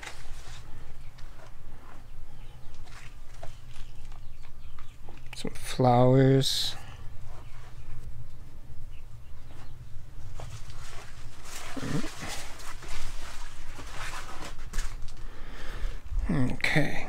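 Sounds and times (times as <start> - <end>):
rustling plants: 0.0 - 17.0
footsteps through plants: 9.4 - 15.3.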